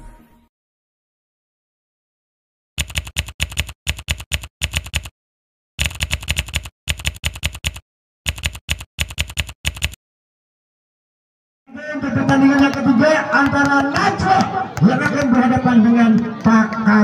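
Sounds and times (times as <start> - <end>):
rapid keystroke clicks: 2.8 - 5.1, 5.8 - 10.0.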